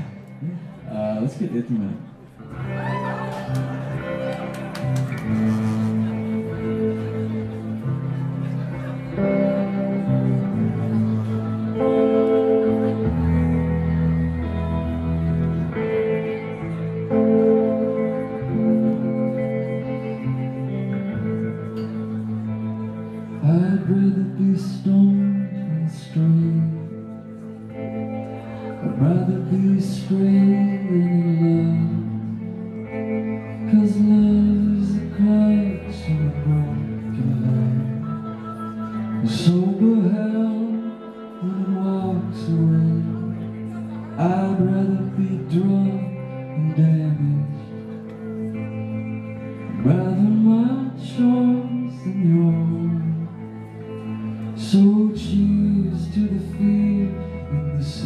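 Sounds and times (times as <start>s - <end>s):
electric guitar chord: 0.0s - 58.0s
man singing: 23.1s - 27.7s, 28.7s - 48.4s, 49.6s - 58.0s.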